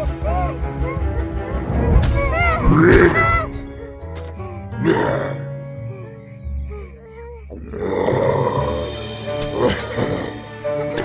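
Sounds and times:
cartoon music with gliding notes: 0.0s - 11.0s
loud cartoon growl: 4.8s - 5.4s, 7.5s - 10.4s.

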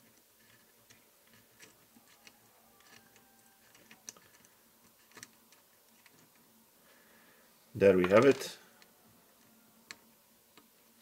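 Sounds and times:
small metallic clicks: 0.1s - 6.4s.

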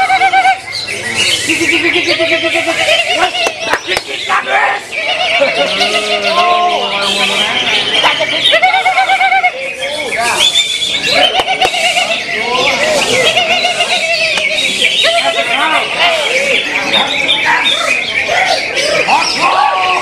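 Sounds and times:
bird warbling and trilling: 0.0s - 20.0s
songbirds singing: 0.0s - 20.0s.

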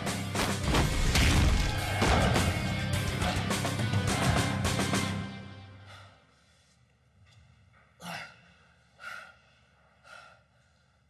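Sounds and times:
man breathing hard: 3.1s - 5.1s, 5.7s - 6.8s, 8.0s - 11.0s.

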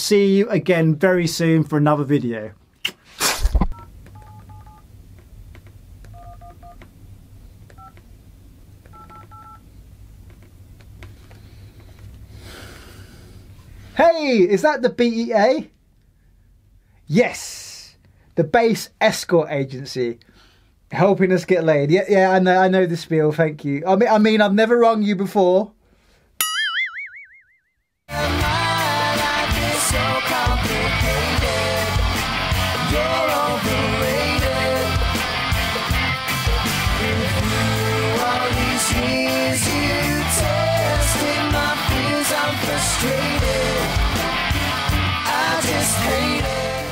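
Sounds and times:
phone keypad tones: 3.7s - 4.8s, 6.1s - 6.8s, 7.7s - 8.0s, 8.9s - 9.6s
low steady hum: 3.7s - 13.9s
cartoon boing twang: 26.4s - 27.7s.

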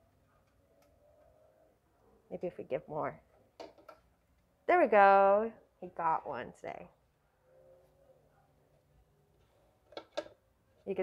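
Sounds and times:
woman speaking: 2.3s - 3.2s, 4.7s - 7.0s.

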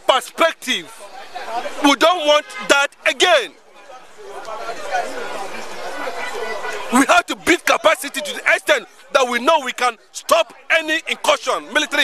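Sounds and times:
overlapping voices chattering: 0.0s - 12.0s.

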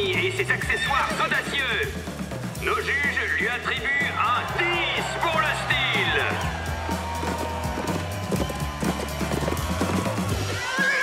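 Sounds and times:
background music with steady beat: 0.0s - 11.0s
horse hoofbeats galloping: 6.4s - 11.0s.

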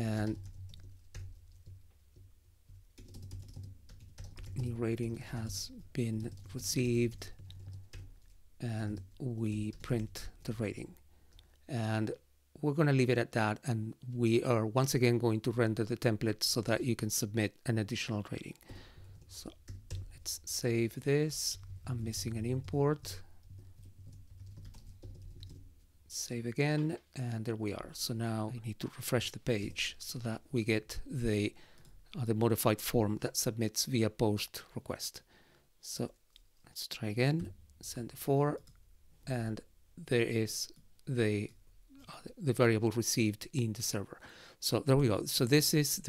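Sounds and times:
computer keyboard typing: 0.2s - 8.4s, 19.0s - 20.1s, 21.5s - 25.7s.

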